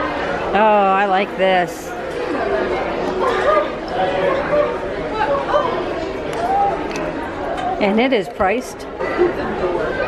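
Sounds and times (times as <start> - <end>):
background chatter of people: 0.0 - 10.0.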